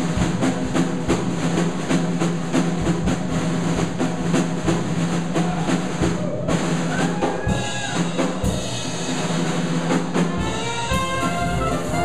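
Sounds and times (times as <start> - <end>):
drum kit beat: 0.0 - 12.0
held low rhythm section notes: 8.9 - 12.0.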